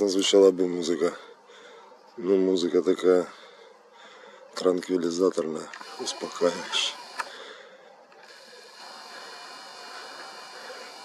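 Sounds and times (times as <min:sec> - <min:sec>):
lens zoom motor whirring: 0:05.6 - 0:11.0.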